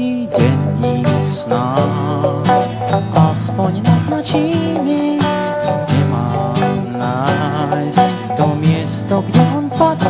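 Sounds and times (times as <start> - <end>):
pop song instrumental: 0.0 - 10.0
strummed accompaniment: 0.0 - 10.0.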